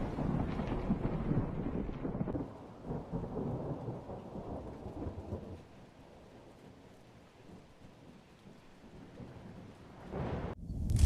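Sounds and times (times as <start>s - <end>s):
steady rain: 0.0s - 11.0s
thunder rumbling and crackling: 0.0s - 11.0s.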